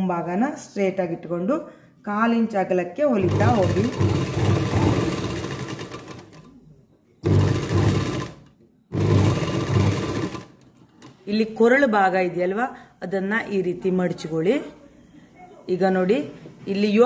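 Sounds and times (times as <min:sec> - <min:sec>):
sewing machine running: 0:03.2 - 0:06.5, 0:07.2 - 0:10.6.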